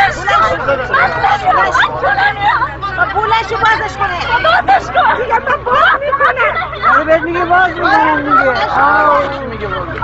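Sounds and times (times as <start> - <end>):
several people talking excitedly: 0.0 - 10.0.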